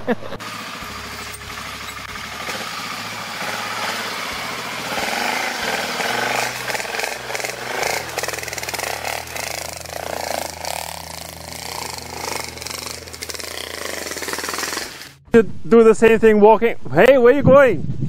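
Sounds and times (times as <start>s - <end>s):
motorcycle engine at low revs: 0.2s - 15.3s
water splashing from wheels: 0.4s - 15.2s.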